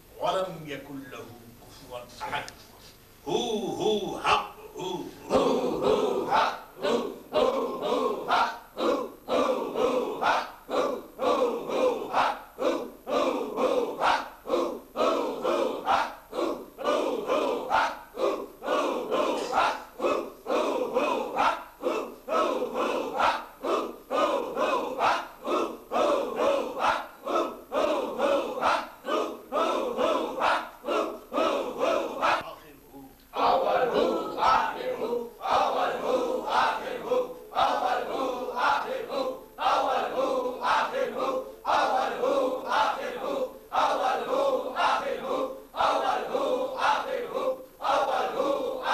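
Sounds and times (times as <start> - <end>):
men chanting in unison: 3.2 - 32.6, 33.3 - 48.9.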